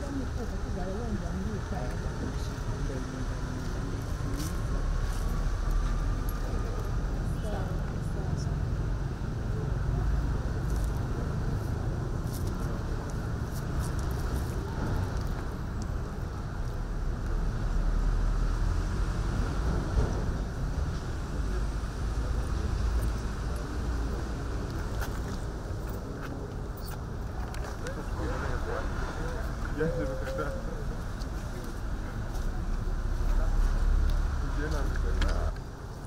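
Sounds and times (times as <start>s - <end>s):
faint murmuring voices: 21.0s - 35.6s.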